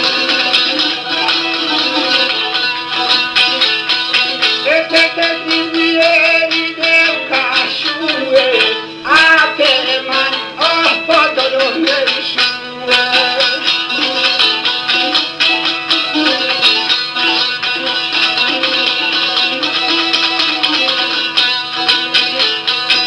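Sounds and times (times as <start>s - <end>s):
plucked long-necked lute: 0.0s - 23.0s
man singing: 4.3s - 16.9s.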